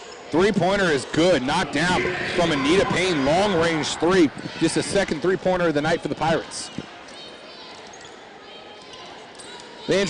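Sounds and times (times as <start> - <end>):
crowd murmur: 0.8 - 10.0.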